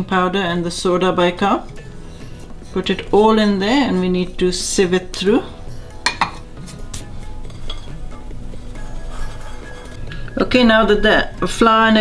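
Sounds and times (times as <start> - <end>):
soft background music: 0.0 - 12.0
kitchenware clinking: 6.0 - 6.5, 7.4 - 8.0.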